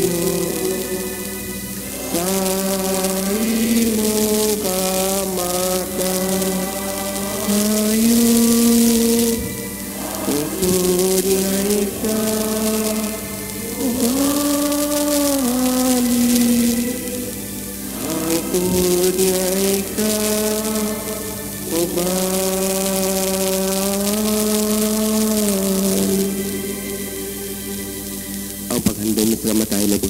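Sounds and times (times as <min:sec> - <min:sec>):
person singing long held notes: 0:00.0 - 0:28.8
steady hiss: 0:00.0 - 0:30.0.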